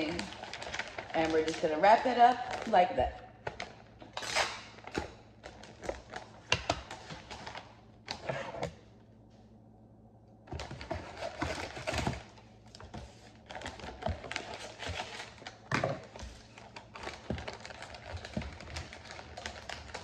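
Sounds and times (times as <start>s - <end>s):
wrapping paper crinkling: 0.0s - 2.8s, 10.8s - 20.0s.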